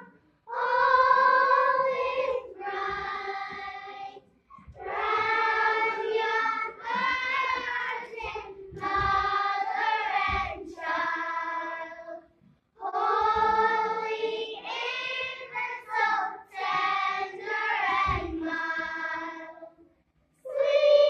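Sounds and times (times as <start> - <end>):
children's choir singing: 0.0 - 19.8, 20.4 - 21.0.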